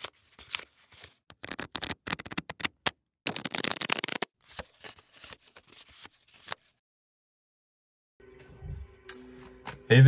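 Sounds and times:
cards being shuffled: 0:00.0 - 0:06.7.

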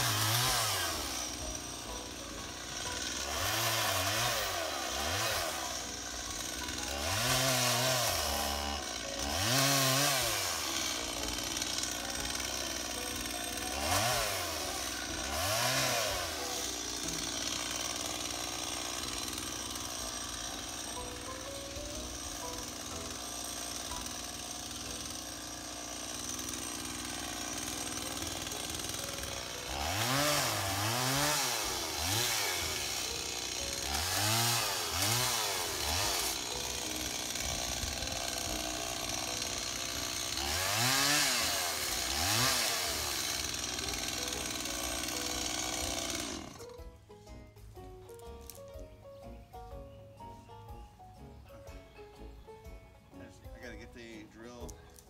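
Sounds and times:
chainsaw running and revving: 0:00.0 - 0:46.9.

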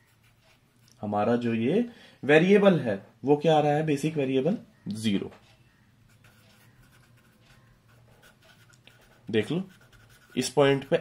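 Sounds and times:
pen scratching on paper: 0:06.1 - 0:11.0.

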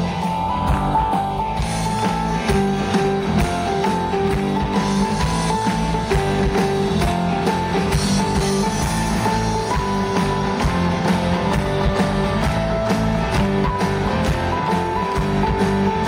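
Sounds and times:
rock band playing: 0:00.0 - 0:16.0.

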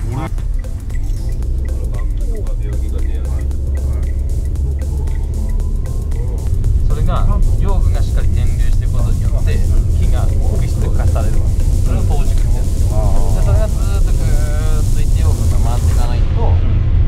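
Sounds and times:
voices: 0:00.0 - 0:16.7
background music: 0:00.0 - 0:17.0
van engine drone and road noise: 0:00.0 - 0:17.0.

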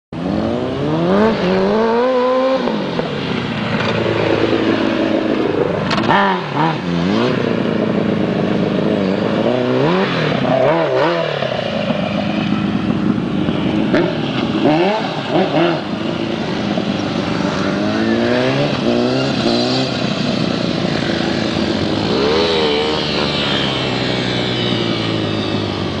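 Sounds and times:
motorcycle engine accelerating: 0:00.2 - 0:26.0.

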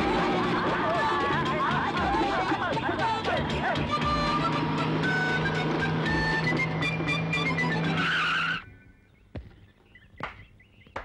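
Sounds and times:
car engine and tyres moving: 0:00.0 - 0:10.8
tyre screech: 0:03.9 - 0:08.7.

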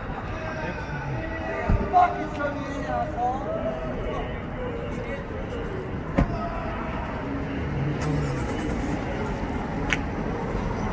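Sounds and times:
city street traffic: 0:00.0 - 0:10.9.

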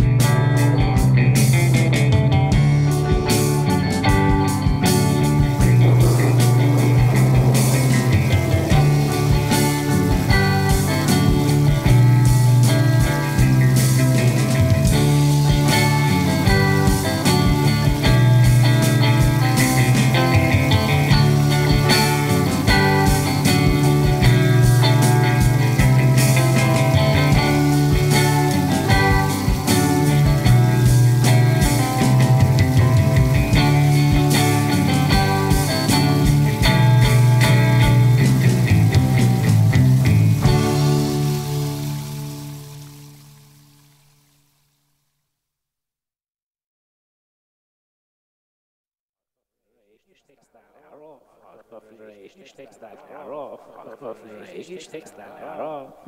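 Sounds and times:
instrumental folk-rock: 0:00.0 - 0:43.7.

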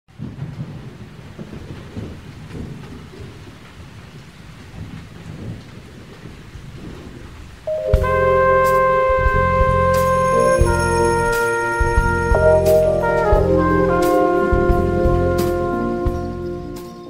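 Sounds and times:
low uneven rumbling: 0:00.1 - 0:17.0
sustained musical chord: 0:07.7 - 0:17.0.

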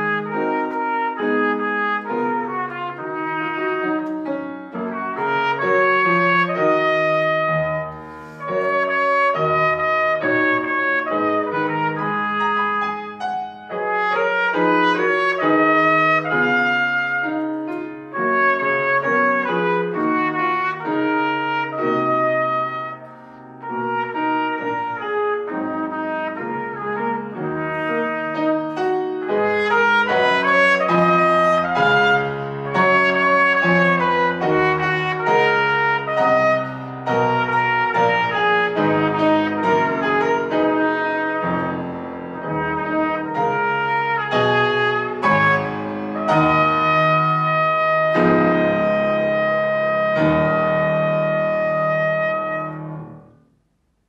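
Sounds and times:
trumpet melody: 0:00.0 - 0:53.4
grand piano accompaniment: 0:00.0 - 0:54.0.

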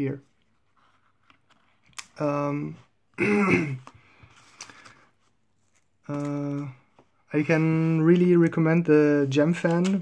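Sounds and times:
man coughing: 0:03.2 - 0:03.9.

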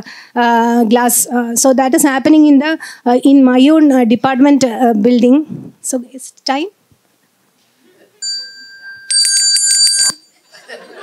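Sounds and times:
hand bell ringing: 0:08.2 - 0:10.4.

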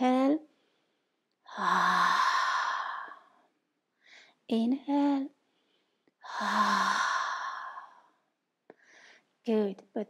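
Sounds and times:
woman breathy exhalation: 0:01.5 - 0:03.4
faint breath in: 0:05.5 - 0:09.3.

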